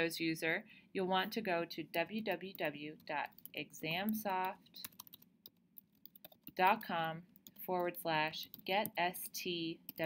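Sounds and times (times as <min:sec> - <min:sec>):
person speaking: 0:00.0 - 0:05.1, 0:06.4 - 0:10.0
typing on computer keyboard: 0:02.3 - 0:09.0.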